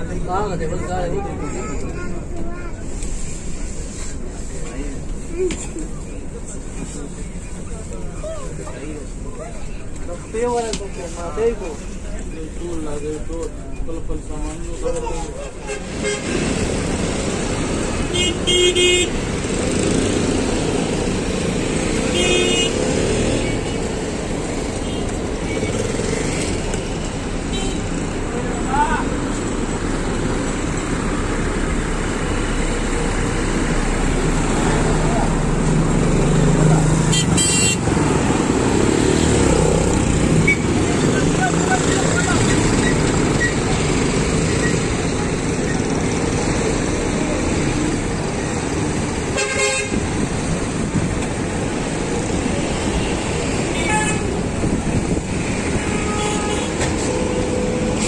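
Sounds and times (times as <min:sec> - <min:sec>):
voices: 0:00.0 - 0:18.0, 0:37.8 - 0:49.0
busy traffic and engines: 0:00.0 - 0:58.0
vehicle horn toots: 0:37.1 - 0:37.8.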